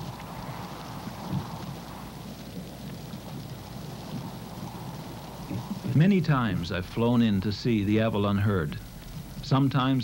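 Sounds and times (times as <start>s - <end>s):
faint low hum: 0.0s - 10.0s
low rumbling background noise: 0.0s - 10.0s.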